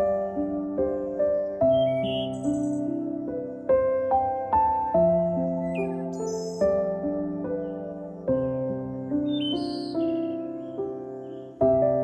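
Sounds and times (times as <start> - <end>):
soft keyboard music: 0.0 - 12.0.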